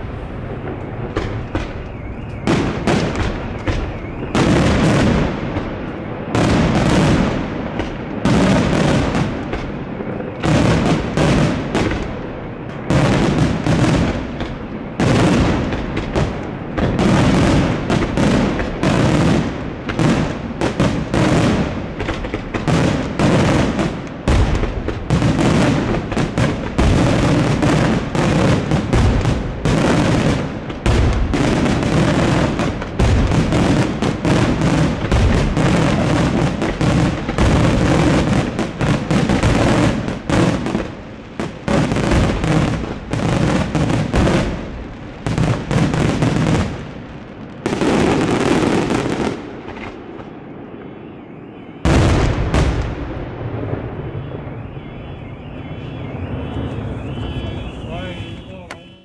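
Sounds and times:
fireworks bangs and crackling: 0.0s - 59.0s.

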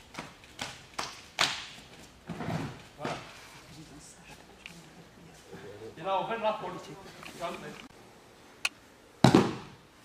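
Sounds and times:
sharp slaps on mats: 0.1s - 2.0s, 9.2s - 9.8s.

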